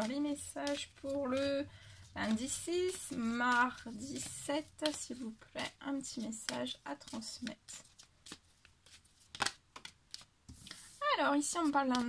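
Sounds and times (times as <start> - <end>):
cards clicking and tapping: 0.0 - 10.8, 11.4 - 12.0.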